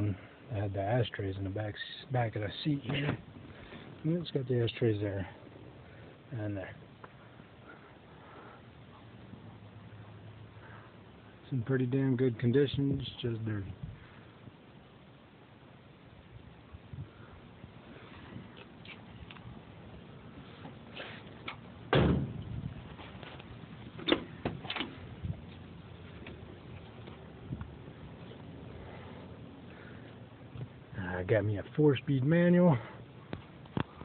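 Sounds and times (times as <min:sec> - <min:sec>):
truck door slamming: 0:21.9 - 0:22.5, 0:24.0 - 0:25.0.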